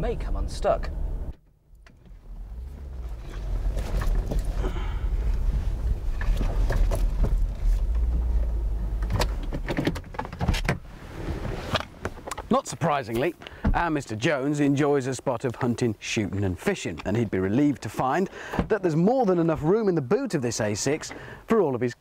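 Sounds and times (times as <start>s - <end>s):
car engine and tyre rumble: 0.0s - 18.7s.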